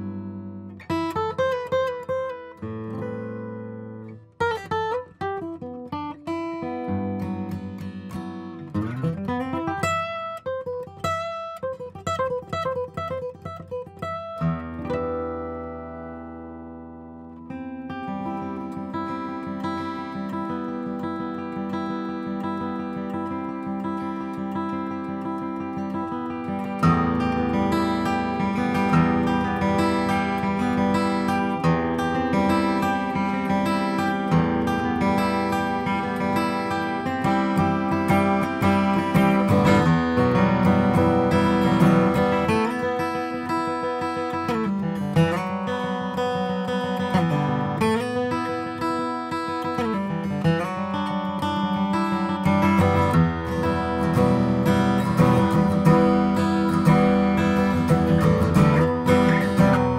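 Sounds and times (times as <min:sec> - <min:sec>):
acoustic guitar plucked notes: 0:00.0 - 0:59.9.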